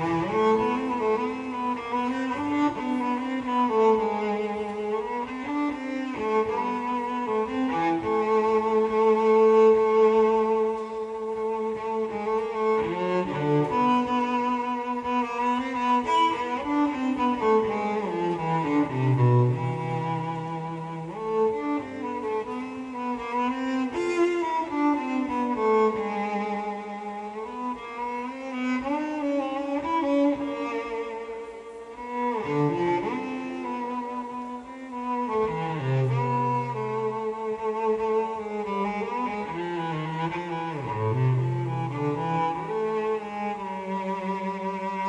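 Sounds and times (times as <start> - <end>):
bowed cello melody: 0.0 - 45.0.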